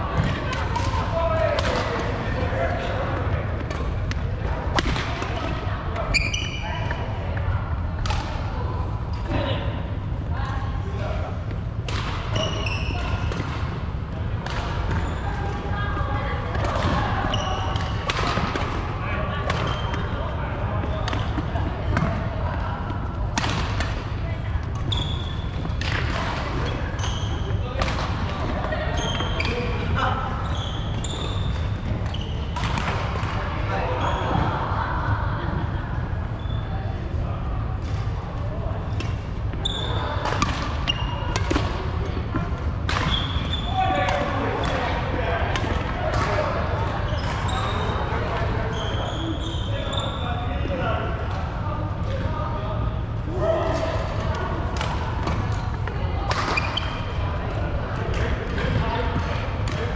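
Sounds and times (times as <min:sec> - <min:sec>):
shoe squeaks: 0:06.0 - 0:06.7, 0:12.3 - 0:13.0, 0:17.3 - 0:17.8, 0:24.8 - 0:25.6, 0:26.9 - 0:27.5, 0:28.9 - 0:29.7, 0:30.4 - 0:32.6, 0:39.6 - 0:40.2, 0:43.1 - 0:43.8, 0:47.1 - 0:48.1, 0:48.7 - 0:50.3.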